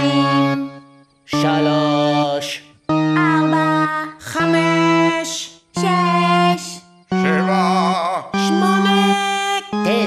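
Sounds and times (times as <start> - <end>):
organ pipes held notes: 0.0 - 10.0.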